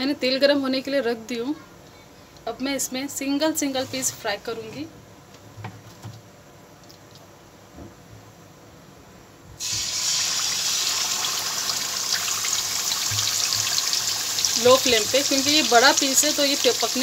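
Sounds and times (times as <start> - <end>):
hot oil sizzling and crackling: 9.6 - 17.0.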